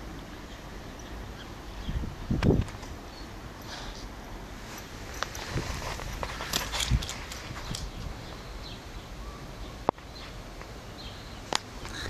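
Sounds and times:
claws clicking and scraping on stone: 5.1s - 8.0s.

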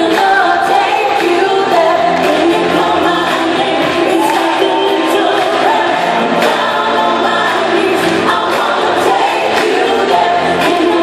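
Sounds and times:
live pop concert music with singing: 0.0s - 11.0s.

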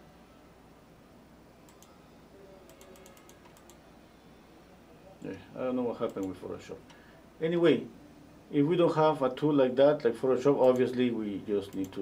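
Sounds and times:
low steady hum: 0.0s - 12.0s
keyboard typing: 1.7s - 2.0s, 2.7s - 3.8s, 6.0s - 6.4s.

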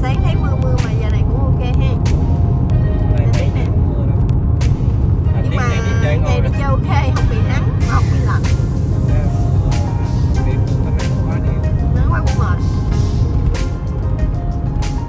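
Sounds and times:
car road rumble from inside: 0.0s - 15.0s
music with singing voice: 0.0s - 15.0s.

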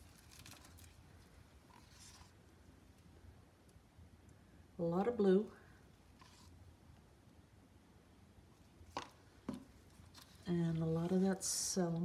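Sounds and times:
faint low room hum: 0.0s - 12.0s.

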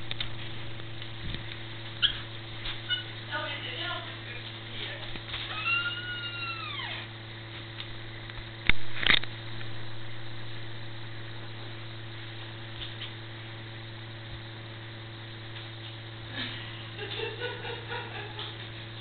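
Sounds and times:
steady low hum: 0.0s - 19.0s
high drawn-out animal call: 5.5s - 7.0s.

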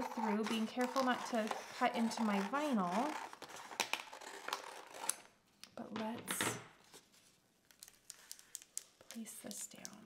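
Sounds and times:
plastic sheet crinkling: 7.0s - 9.6s.

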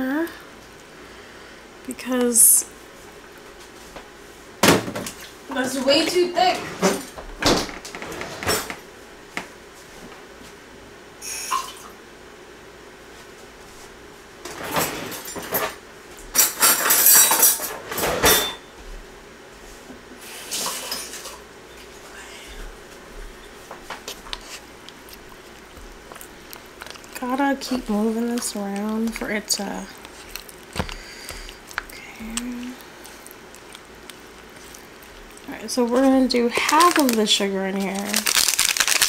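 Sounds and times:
dishes clinking: 16.4s - 18.6s.

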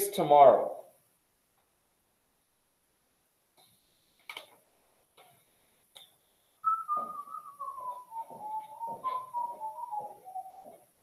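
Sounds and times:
person whistling a tune: 6.6s - 11.0s.

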